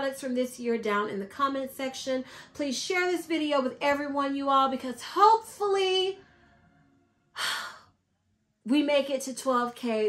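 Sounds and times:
woman's voice: 0.0 - 6.2, 8.7 - 10.0
woman breathing: 2.2 - 2.6, 6.2 - 8.0.

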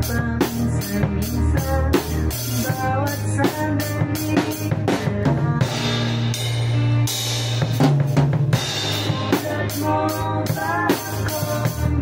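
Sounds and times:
acoustic drum kit playing: 0.0 - 12.0
recorded pop-rock song: 0.0 - 12.0.

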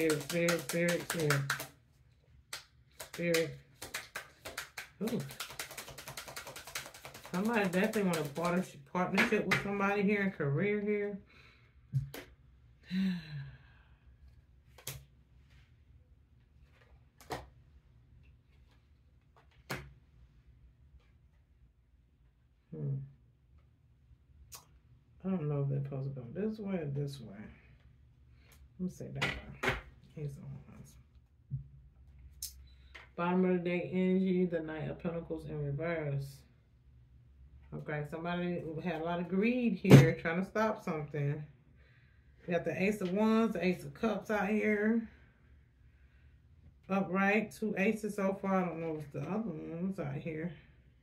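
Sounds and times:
cards being shuffled: 0.0 - 1.8, 2.5 - 8.6, 16.7 - 17.5.

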